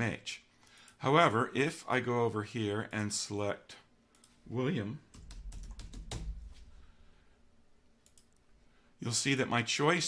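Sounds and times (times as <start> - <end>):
faint keyboard clicks: 4.1 - 4.4, 5.1 - 6.6, 8.0 - 8.5
typing on computer keyboard: 5.1 - 6.5.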